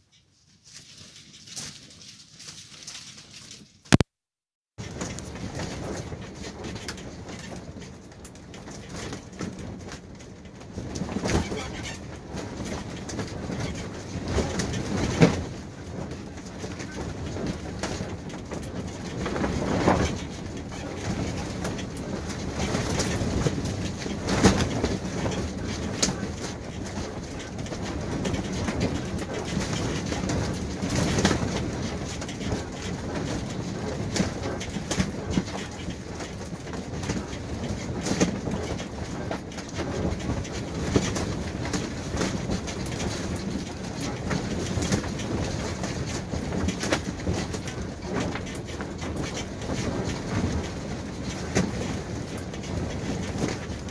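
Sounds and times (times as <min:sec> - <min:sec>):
wind gusting against canvas: 0:04.8 - 0:53.9.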